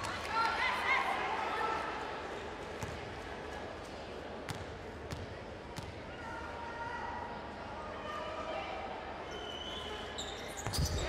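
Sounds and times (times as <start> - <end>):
murmur of arena crowd: 0.0 - 11.0.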